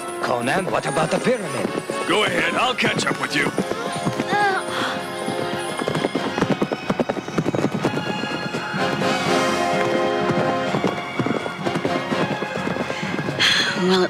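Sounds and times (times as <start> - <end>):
background music: 0.0 - 14.0
galloping hoofbeats: 0.0 - 14.0.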